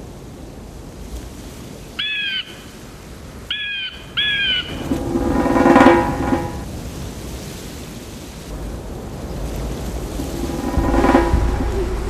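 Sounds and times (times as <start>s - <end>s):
bird calling: 3.5s - 4.9s
low background rumble: 9.8s - 12.0s.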